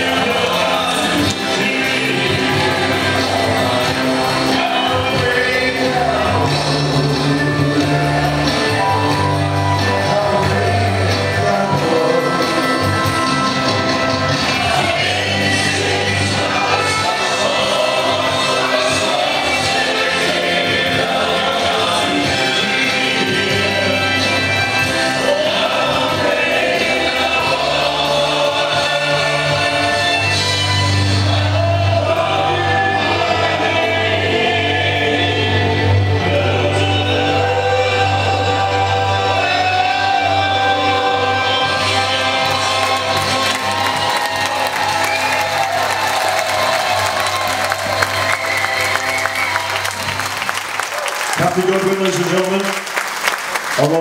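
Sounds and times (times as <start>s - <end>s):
vocal duet over ballad music: 0.0s - 50.6s
audience applause: 41.8s - 54.0s.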